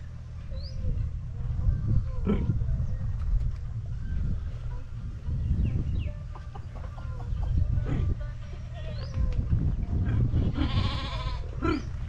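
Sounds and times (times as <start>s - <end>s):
sheep bleating: 10.4s - 11.7s.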